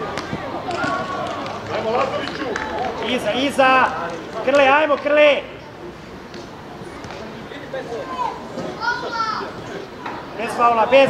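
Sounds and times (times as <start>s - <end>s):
overlapping voices calling out: 0.0s - 11.0s.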